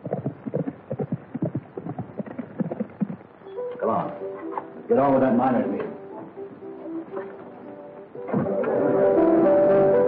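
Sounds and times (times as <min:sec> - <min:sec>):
horse hoofbeats clip-clopping: 0:00.0 - 0:03.3.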